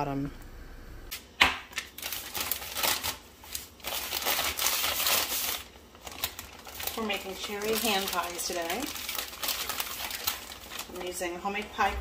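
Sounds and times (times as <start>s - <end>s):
plastic bag crinkling: 1.9s - 11.9s.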